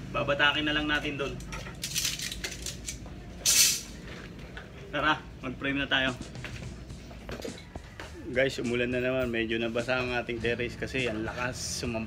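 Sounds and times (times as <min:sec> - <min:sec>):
metal strips clicking and clinking: 0:01.3 - 0:03.9
metal strips scraping: 0:01.4 - 0:04.0.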